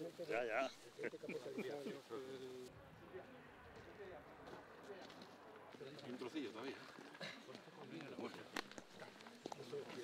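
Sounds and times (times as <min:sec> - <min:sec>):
faint voices of people talking: 0:00.0 - 0:10.0.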